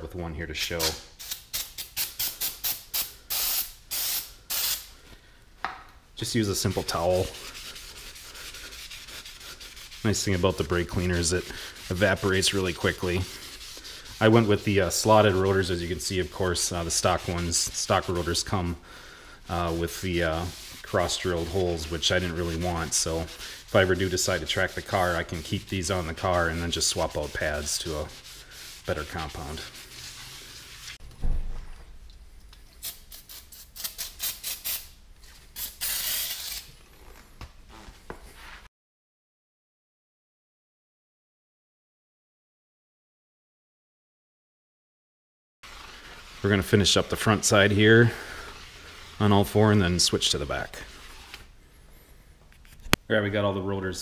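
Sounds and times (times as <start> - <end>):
towel rubbing on brake rotor: 6.5 - 18.8, 19.5 - 31.0, 45.7 - 51.5.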